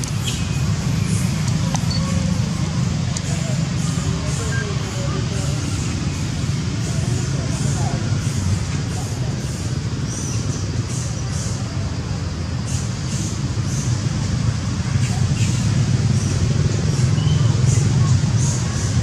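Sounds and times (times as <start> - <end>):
faint indistinct voices: 0.6 - 19.0.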